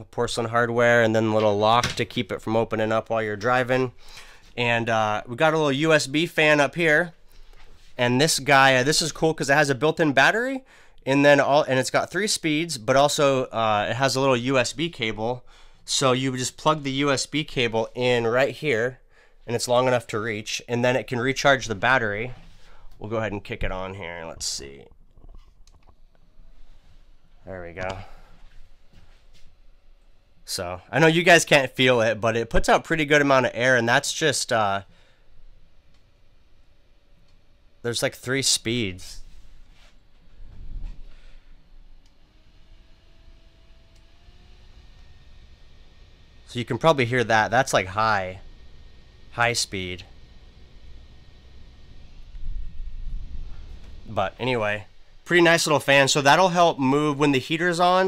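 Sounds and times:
small fan whirring: 0.0 - 58.0
low rumble: 51.9 - 55.3.

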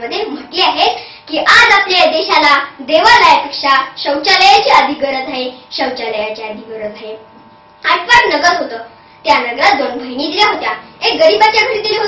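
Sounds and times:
girl giving a speech: 0.0 - 7.2, 7.8 - 12.0.

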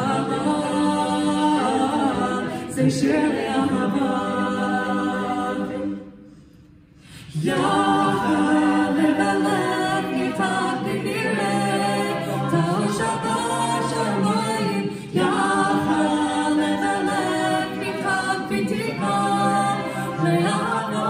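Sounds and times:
a cappella group singing: 0.0 - 21.0.

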